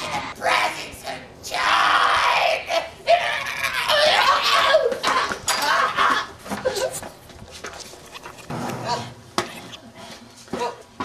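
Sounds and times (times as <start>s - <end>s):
person screaming high-pitched: 0.4s - 6.3s.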